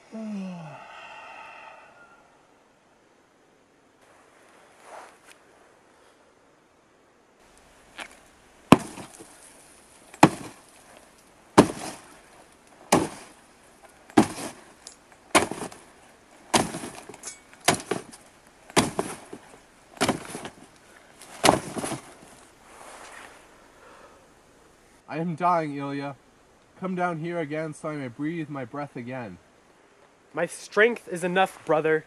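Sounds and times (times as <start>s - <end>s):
sword striking coffin lid: 14.2s - 14.6s, 16.5s - 18.1s, 18.8s - 19.2s.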